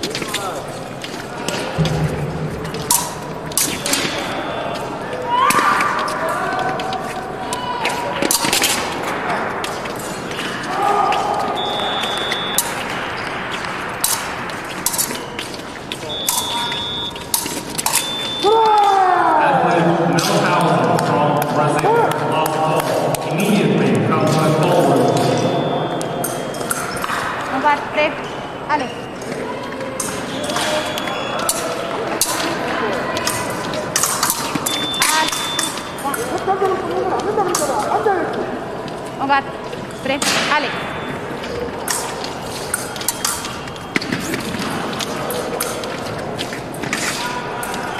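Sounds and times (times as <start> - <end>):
fencing blades clicking and clattering: 2.6 - 4.4, 7.8 - 11.5, 12.4 - 19.0, 26.2 - 27.4, 29.7 - 39.3, 41.4 - 47.9
short high beeps: 11.6 - 12.8, 16.0 - 17.2, 17.9 - 18.5, 34.6 - 36.5.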